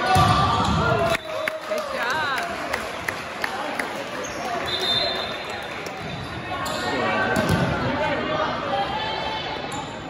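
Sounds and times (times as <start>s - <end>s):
people talking in a gym: 0.0s - 10.0s.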